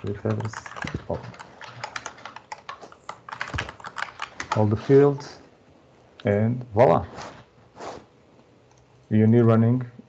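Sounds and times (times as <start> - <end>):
keyboard key clicks: 0.0 - 4.7
heavy keystroke: 0.0 - 5.2.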